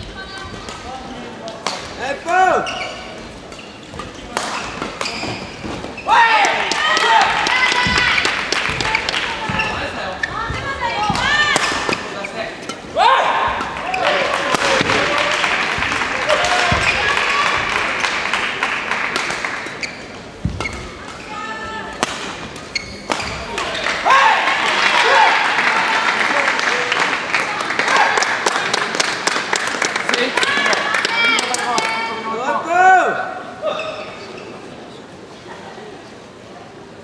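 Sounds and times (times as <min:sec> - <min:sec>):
voices in a hall: 0:00.0 - 0:37.0
shoes squeaking on court floor: 0:02.5 - 0:06.2, 0:07.6 - 0:12.9, 0:16.5 - 0:18.2, 0:19.6 - 0:21.5, 0:22.4 - 0:23.6, 0:33.6 - 0:35.1
racket hitting shuttlecock: 0:14.4 - 0:15.1, 0:22.0 - 0:23.7.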